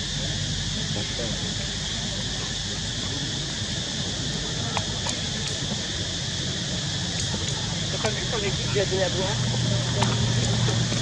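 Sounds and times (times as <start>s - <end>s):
faint distant voices: 0.0s - 11.0s
steady hiss: 0.0s - 11.0s.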